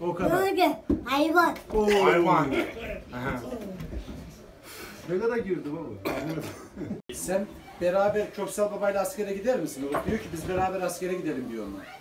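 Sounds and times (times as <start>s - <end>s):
surrounding conversation: 0.0s - 12.0s
men murmuring: 1.8s - 3.8s.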